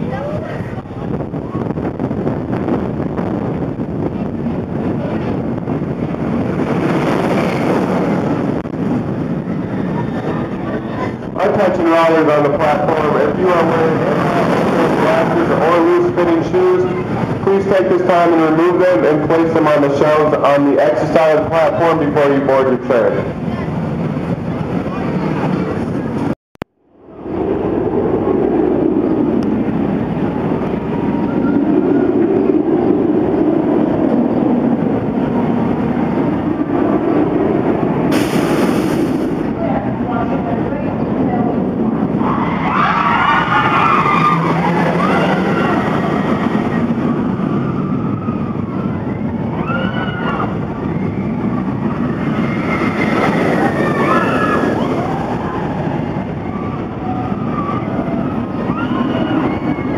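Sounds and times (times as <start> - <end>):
rumble of moving ride: 0.0 - 59.9
riders screaming: 42.1 - 59.9.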